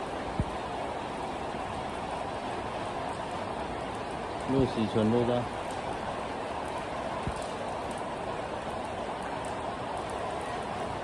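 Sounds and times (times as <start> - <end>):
heavy rain: 0.0 - 11.0.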